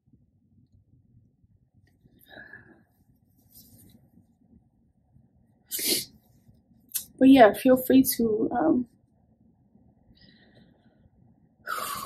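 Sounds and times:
woman sniffling: 0:11.7 - 0:12.0.

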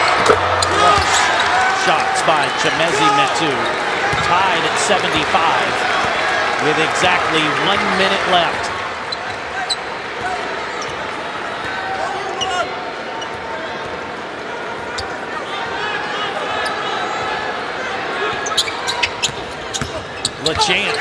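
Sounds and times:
arena crowd noise: 0:00.0 - 0:21.0.

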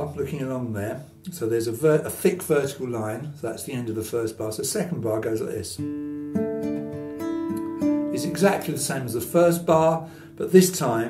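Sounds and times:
classical guitar fingerpicked: 0:00.0 - 0:11.0.

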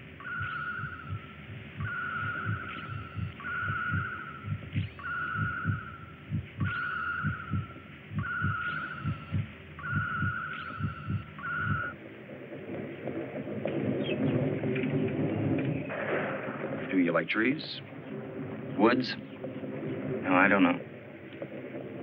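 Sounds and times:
heartbeat thumps: 0:00.0 - 0:16.9, 0:17.8 - 0:22.0
electronic tone with rising chirp: 0:00.1 - 0:12.0.

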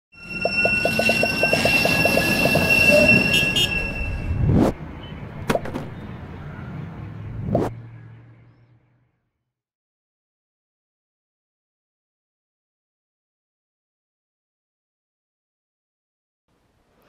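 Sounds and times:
tram wheels squealing on rails: 0:00.1 - 0:04.5
whooshes: 0:03.8 - 0:04.8, 0:07.4 - 0:07.8.

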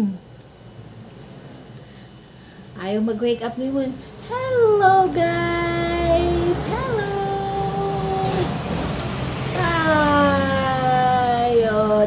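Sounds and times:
person singing a long note: 0:04.3 - 0:08.6.

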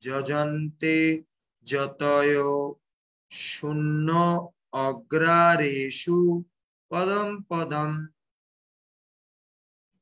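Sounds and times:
man chanting: 0:00.0 - 0:08.3.

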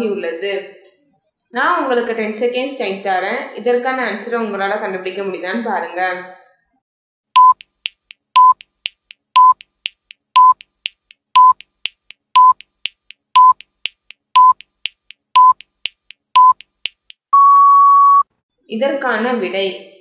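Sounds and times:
countdown timer beeps: 0:07.4 - 0:16.7
long higher beep: 0:17.3 - 0:18.3.

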